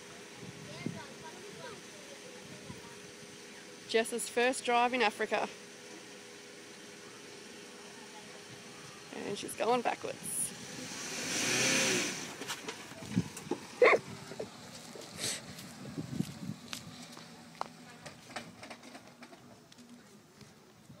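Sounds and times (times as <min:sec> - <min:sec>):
car engine pulling away: 0:05.4 - 0:19.3.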